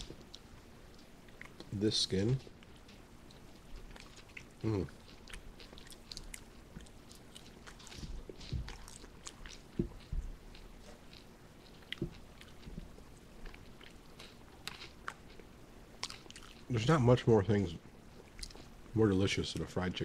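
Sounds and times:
chewing fried chicken: 0.0s - 17.2s, 18.0s - 19.7s
soft low thumps: 7.9s - 8.8s, 9.7s - 10.6s.

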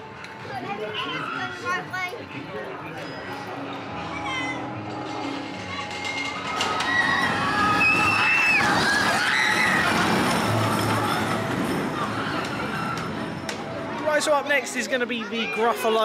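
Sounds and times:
roller coaster wheels rumbling on track: 5.5s - 14.4s
riders screaming: 6.4s - 11.3s.

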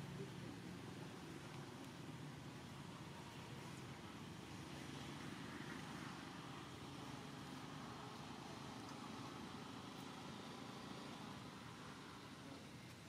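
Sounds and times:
outdoor background hiss and rumble: 0.0s - 13.0s.

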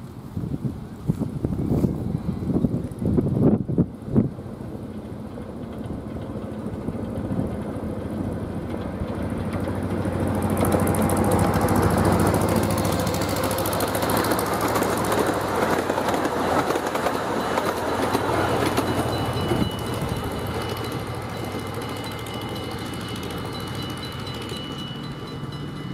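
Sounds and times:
cars rattling on rails: 0.0s - 25.9s
miniature train engine hum: 0.0s - 25.9s
wind buffeting microphone: 0.2s - 21.8s.

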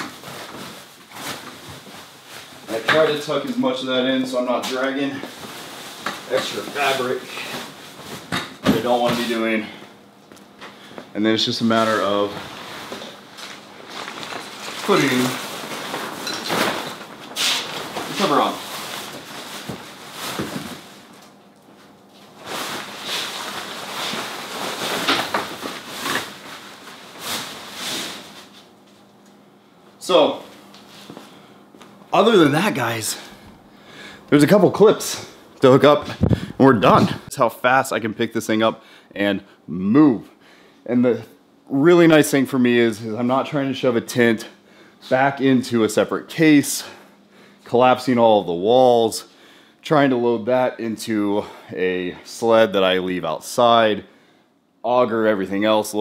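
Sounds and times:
fabric cover rustling: 12.3s - 21.1s, 21.8s - 29.0s.

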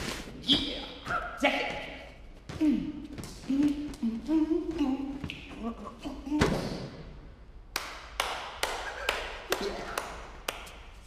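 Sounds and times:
sharp hand claps: 7.7s - 11.0s.

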